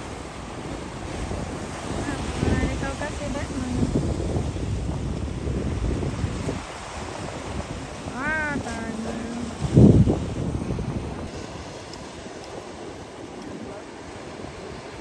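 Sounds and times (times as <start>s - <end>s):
surf breaking on rocks: 0.0s - 15.0s
wind buffeting microphone: 0.0s - 15.0s.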